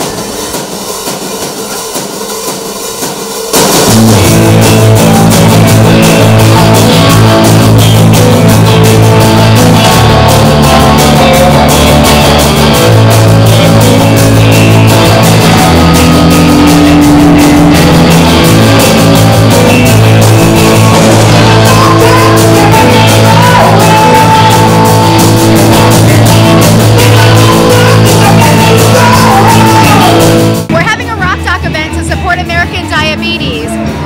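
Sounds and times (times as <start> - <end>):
drums: 0.0 - 34.0
rock band music: 0.0 - 34.0
electric guitar: 3.6 - 34.0.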